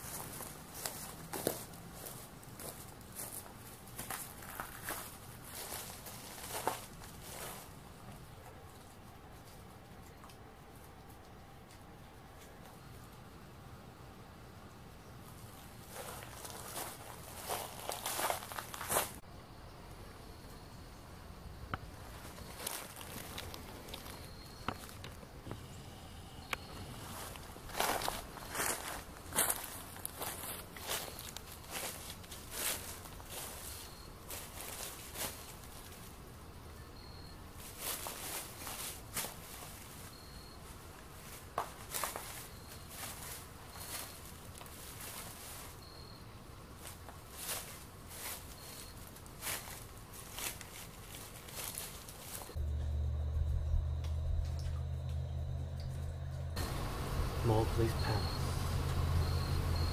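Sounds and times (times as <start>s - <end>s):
footsteps walking: 0.0s - 12.6s, 15.3s - 19.2s, 21.8s - 25.7s, 26.7s - 36.2s, 41.0s - 45.8s, 46.8s - 52.9s.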